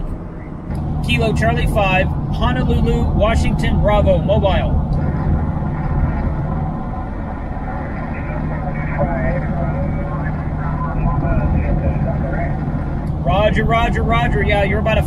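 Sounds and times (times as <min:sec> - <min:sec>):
pickup engine drone: 0:00.0 - 0:15.0
road noise: 0:00.0 - 0:15.0
faint voice through radio speaker: 0:07.6 - 0:12.6.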